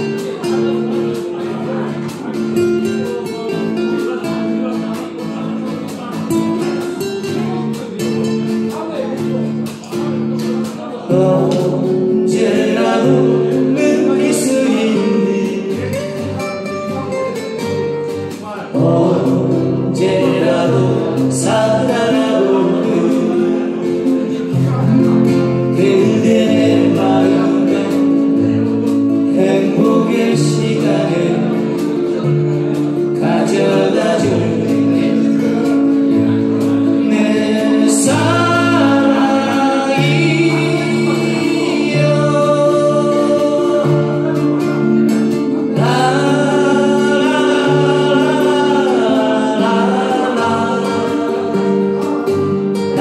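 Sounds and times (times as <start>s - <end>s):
two acoustic guitars playing: 0.0s - 53.0s.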